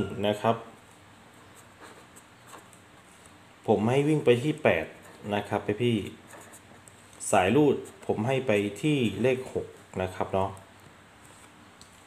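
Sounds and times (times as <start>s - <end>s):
man speaking: 0.0s - 0.8s, 3.6s - 6.3s, 7.2s - 10.6s
marker pen scratching on paper: 0.6s - 3.4s, 4.2s - 8.8s.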